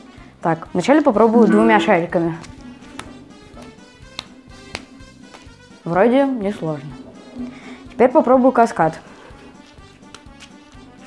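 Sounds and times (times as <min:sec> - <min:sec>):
quiet background music: 0:00.0 - 0:11.0
juggling balls caught in hands: 0:02.3 - 0:05.6, 0:10.0 - 0:10.6.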